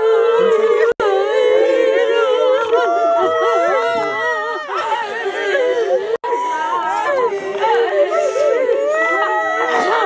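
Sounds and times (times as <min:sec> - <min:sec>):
women wailing and crying: 0:00.0 - 0:10.0.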